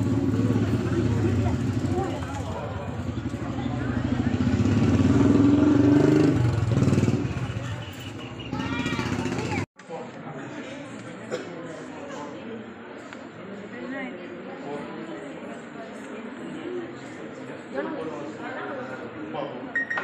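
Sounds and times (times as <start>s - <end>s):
engine running close by: 0.0s - 9.7s
people's voices: 0.0s - 20.0s.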